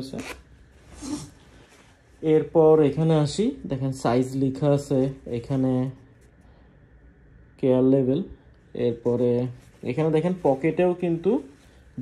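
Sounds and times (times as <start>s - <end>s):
zipper being pulled: 0.0s - 1.4s.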